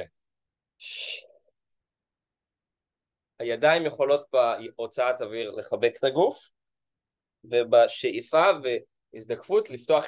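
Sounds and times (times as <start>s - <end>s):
man exhaling: 0.8s - 1.4s.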